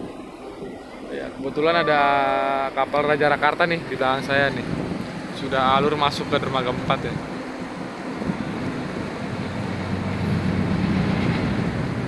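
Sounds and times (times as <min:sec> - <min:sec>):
low engine rumble: 0:00.0 - 0:12.0
rushing water: 0:00.0 - 0:12.0
wind on microphone: 0:03.8 - 0:12.0.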